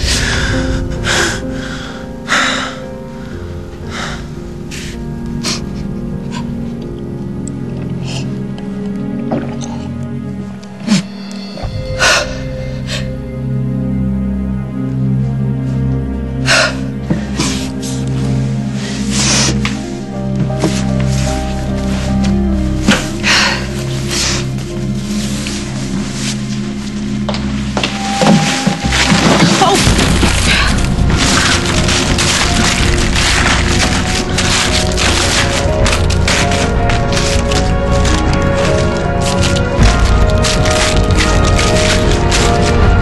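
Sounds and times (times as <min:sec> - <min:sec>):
background music with held notes: 0:00.0 - 0:43.0
drama score sustained chords: 0:00.0 - 0:43.0.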